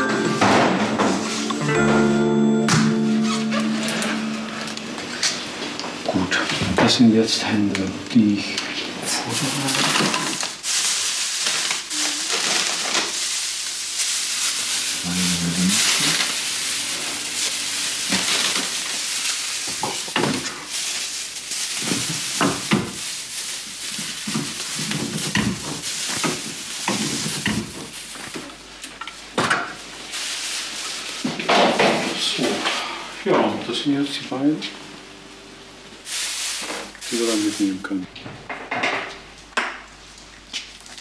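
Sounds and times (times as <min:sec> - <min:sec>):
plastic bags crinkling: 0:08.2 - 0:28.7, 0:29.7 - 0:31.5, 0:40.0 - 0:41.0.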